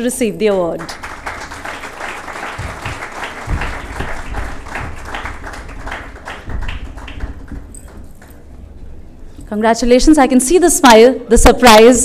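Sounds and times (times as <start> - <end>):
audience applauding: 0.7 - 8.5.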